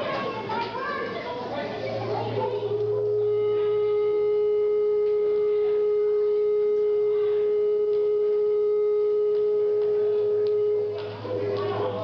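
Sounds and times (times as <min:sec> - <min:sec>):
steady pitched tone: 0:01.5 - 0:12.0.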